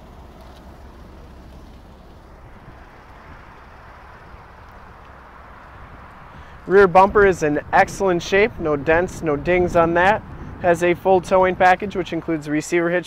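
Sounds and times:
low rumble: 0.0 - 12.2.

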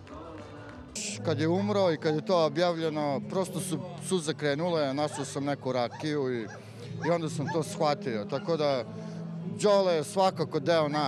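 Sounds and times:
man speaking emotionally: 1.2 - 8.9, 9.6 - 11.0.

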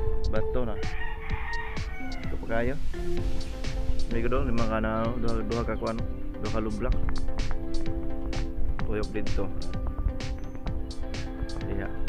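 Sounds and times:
background music with held notes: 0.0 - 12.0
rooster crowing: 0.8 - 2.8.

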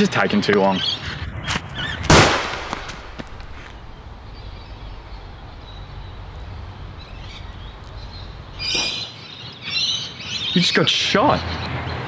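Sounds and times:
loud gunshot: 2.1 - 3.2.

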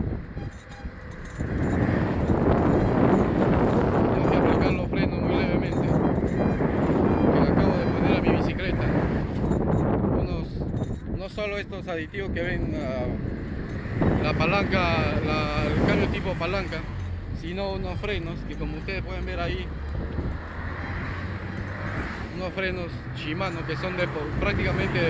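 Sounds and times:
road traffic: 0.0 - 25.0
wind rushing over microphone: 0.0 - 25.0.

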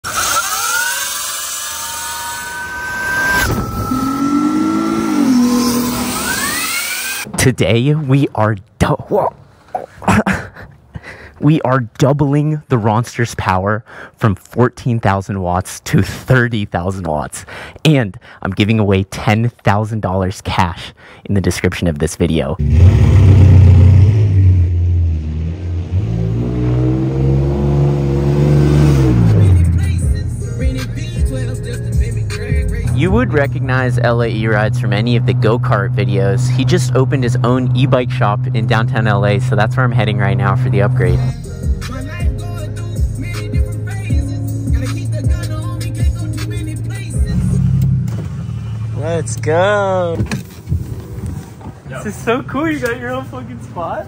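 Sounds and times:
electric dirt bike motor whining: 0.0 - 7.3
rushing noise: 2.4 - 7.1
vehicle engine accelerating: 2.4 - 7.3, 22.6 - 49.4.

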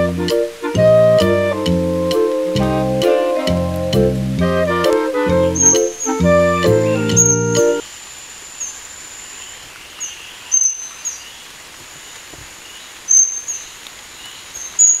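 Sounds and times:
music: 0.0 - 7.8
faint forest ambience: 0.0 - 15.0
high-pitched thin bird calls: 5.5 - 6.2, 10.0 - 11.2.

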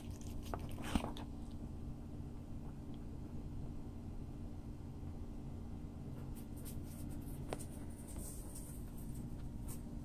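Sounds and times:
low steady hum: 0.0 - 10.0
faint scratchy rustles: 6.2 - 10.0.

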